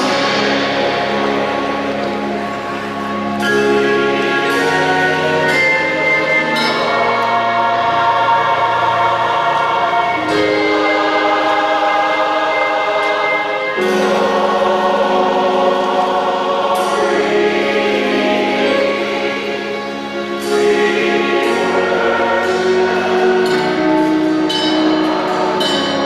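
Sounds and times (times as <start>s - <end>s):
choir singing slow chords: 0.0s - 26.0s.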